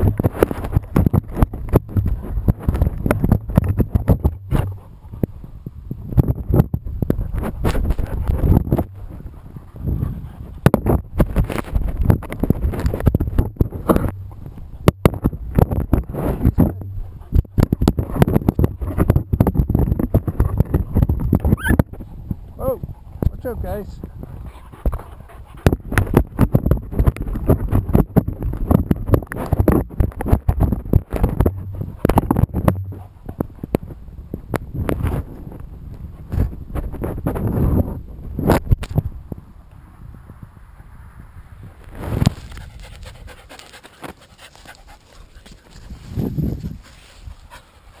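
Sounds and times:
dog panting: 24.3s - 25.8s, 42.4s - 46.2s, 46.8s - 48.0s
dog's teeth knocking on wooden stick: 25.7s - 33.5s.

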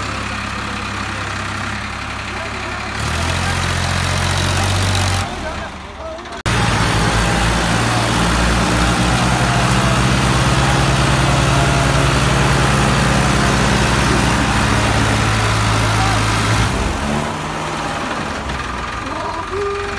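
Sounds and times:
tractor diesel engine running: 0.0s - 19.9s.

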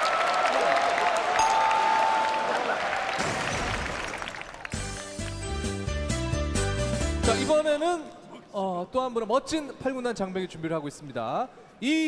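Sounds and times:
audience applauding: 0.0s - 5.8s
background music: 4.0s - 8.4s.

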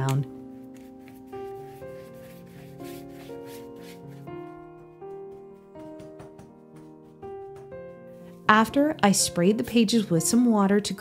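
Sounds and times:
background music with held notes: 0.0s - 11.0s
rubbing strokes on wet paper: 0.3s - 8.4s.

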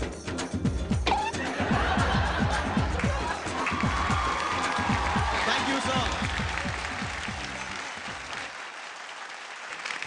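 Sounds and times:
background music: 0.0s - 9.0s
studio audience applauding: 1.7s - 10.0s.

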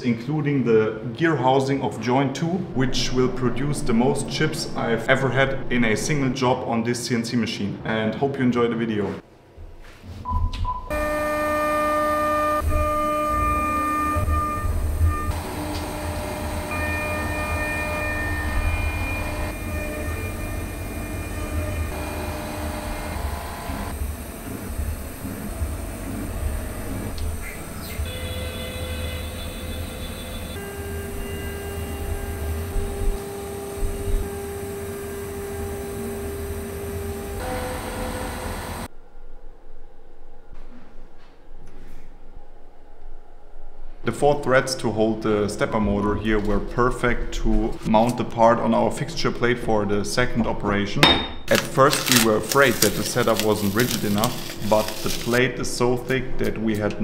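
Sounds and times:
pulsing low rumble: 2.7s - 6.5s, 12.4s - 27.8s
router spindle high whine: 10.9s - 38.9s, 52.0s - 55.4s.

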